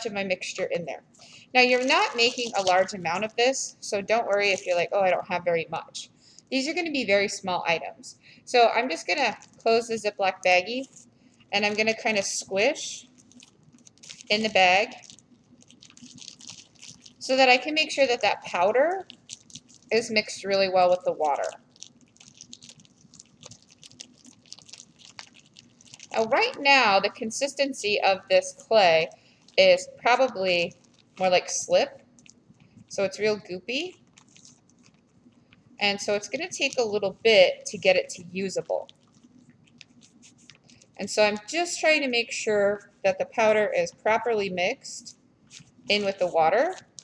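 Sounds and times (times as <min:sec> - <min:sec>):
wet clay squishing: 0:01.1 - 0:05.4, 0:08.6 - 0:42.0, 0:45.4 - 0:47.0
plastic bag crinkling: 0:01.2 - 0:05.0, 0:09.1 - 0:27.2, 0:27.8 - 0:41.7, 0:45.5 - 0:47.0.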